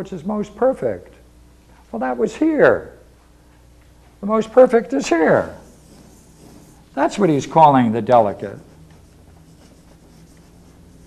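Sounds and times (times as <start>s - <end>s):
steady low hum: 0.0s - 11.0s
chalk writing on chalkboard: 5.1s - 7.6s, 8.2s - 11.0s.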